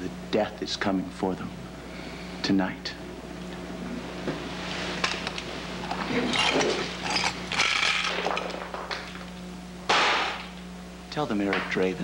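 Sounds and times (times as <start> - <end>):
steady low hum: 0.0 - 12.0
objects clattering and scraping: 5.0 - 9.3.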